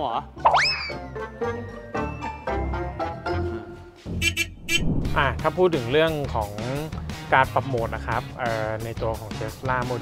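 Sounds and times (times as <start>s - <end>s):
cartoon boing sound effect: 0.4s - 1.0s
light background music: 5.1s - 10.0s.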